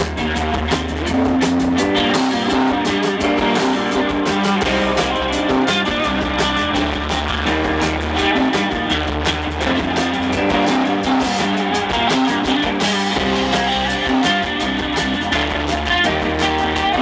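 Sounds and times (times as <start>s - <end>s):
bass guitar: 0.0s - 17.0s
drum kit: 0.0s - 17.0s
electric guitars: 0.0s - 17.0s.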